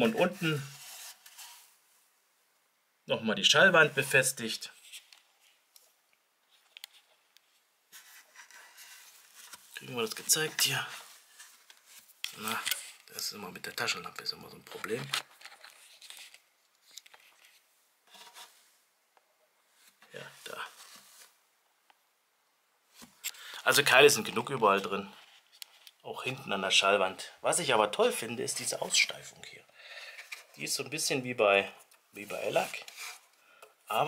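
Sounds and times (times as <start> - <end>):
hand rustling fibre wadding: 0.0 - 2.0, 19.7 - 21.4, 32.1 - 33.3
hands rubbing and rustling: 32.2 - 33.3.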